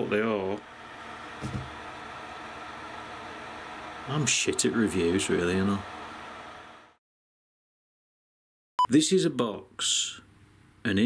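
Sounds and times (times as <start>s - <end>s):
cooling fan whirring: 0.0s - 7.0s.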